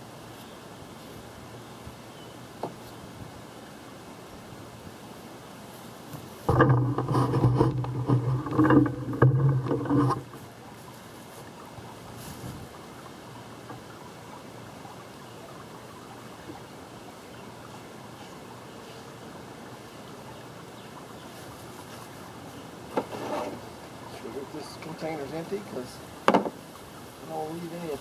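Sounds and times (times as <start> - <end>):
outdoor background hiss: 0.0 - 28.0.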